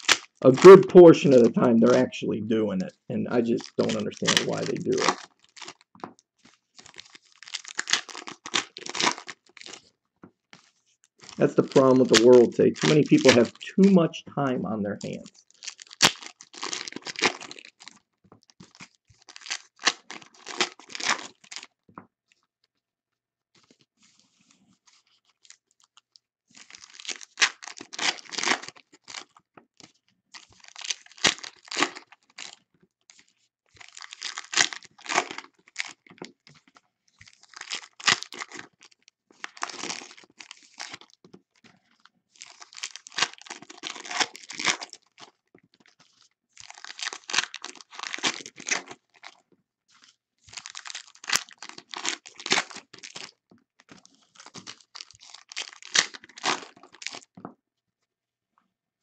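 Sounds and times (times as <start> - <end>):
foil packs tearing and crinkling: 0.0 - 2.1, 3.3 - 5.9, 6.7 - 9.8, 11.2 - 13.6, 15.1 - 18.0, 18.6 - 21.7, 26.6 - 29.4, 30.4 - 32.6, 33.8 - 36.1, 37.3 - 41.2, 42.4 - 49.4, 50.5 - 57.3.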